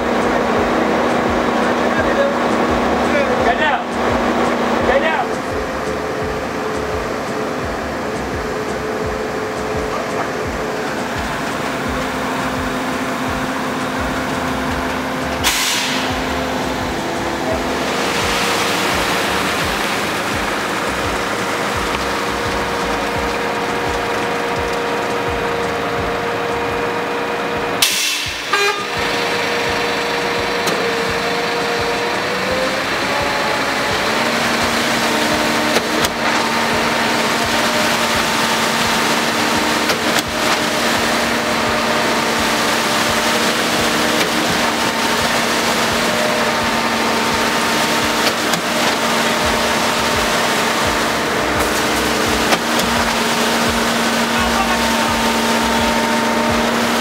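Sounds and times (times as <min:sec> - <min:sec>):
concrete pouring down chute: 0:00.0 - 0:57.0
diesel engines running: 0:00.0 - 0:57.0.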